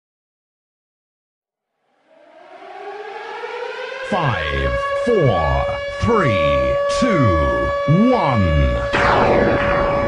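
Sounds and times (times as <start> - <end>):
air raid siren winding up: 1.9 - 10.0.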